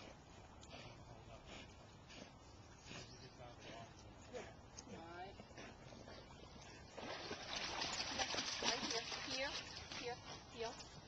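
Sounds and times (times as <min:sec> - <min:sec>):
dog splashing through water: 0:06.9 - 0:10.2.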